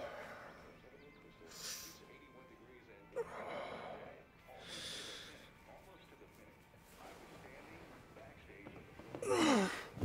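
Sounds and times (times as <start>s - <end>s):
man breathing: 0.0s - 0.8s, 3.3s - 5.5s.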